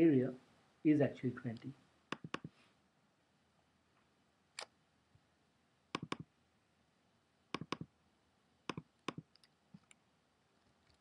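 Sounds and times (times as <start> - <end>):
computer mouse clicks: 2.1 - 2.5, 6.0 - 6.3, 7.6 - 7.9, 8.7 - 10.0.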